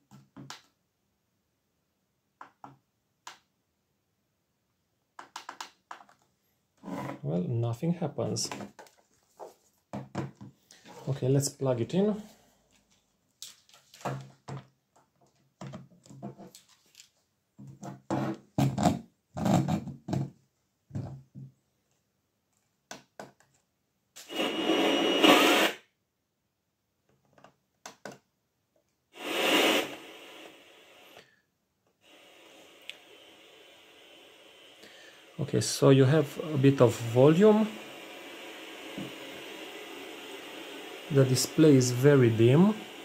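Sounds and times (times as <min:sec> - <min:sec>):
faint radio hiss: 0:10.7 - 0:14.3, 0:24.2 - 0:25.8, 0:29.1 - 0:43.0
radio static hiss bursts: 0:24.2 - 0:25.8, 0:29.1 - 0:31.2, 0:32.0 - 0:43.0.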